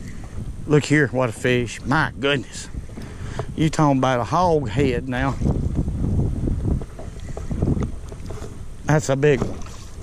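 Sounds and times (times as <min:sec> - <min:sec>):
water lapping around boat: 0:00.0 - 0:10.0
wind buffeting microphone: 0:00.0 - 0:10.0.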